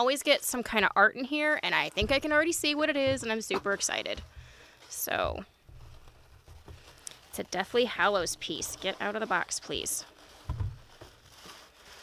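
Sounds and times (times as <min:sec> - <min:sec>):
soft low thump: 0:02.0 - 0:06.9, 0:10.5 - 0:10.9
tissue paper rustling: 0:03.3 - 0:12.0.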